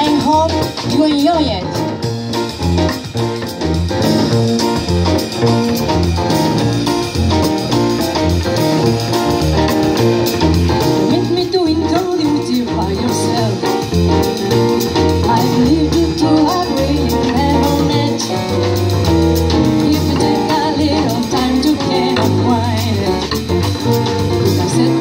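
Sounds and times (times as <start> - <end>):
double bass notes: 0.0 - 25.0
drums with cymbals: 0.0 - 25.0
piano chords: 0.0 - 25.0
woman singing: 11.1 - 13.6, 15.2 - 18.6, 19.7 - 23.4, 24.4 - 25.0.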